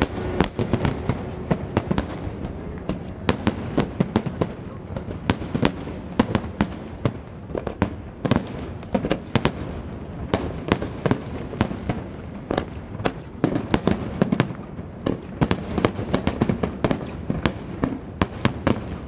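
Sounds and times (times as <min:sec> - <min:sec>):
firework shells bursting: 0:00.0 - 0:04.5.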